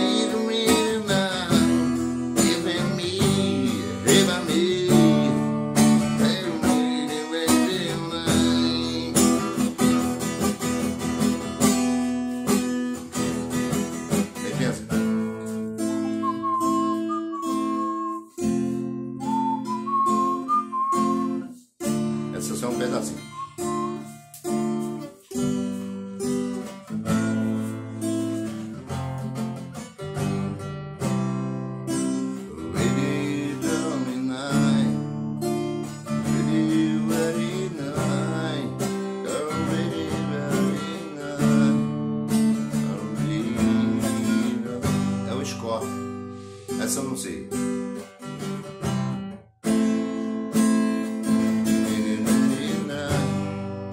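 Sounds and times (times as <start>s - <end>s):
acoustic guitar playing: 0.0s - 53.9s.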